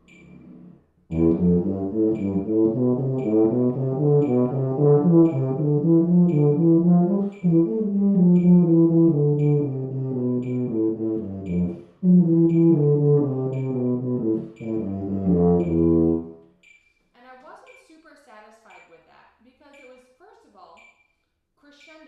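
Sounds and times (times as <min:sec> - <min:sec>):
metronome clicking: 0:00.0 - 0:17.0, 0:17.6 - 0:18.0, 0:19.7 - 0:21.1
tuba playing a run: 0:01.1 - 0:16.4.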